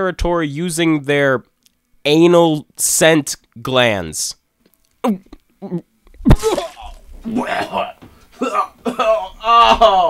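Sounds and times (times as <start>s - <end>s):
person gagging and coughing: 5.6s - 10.0s.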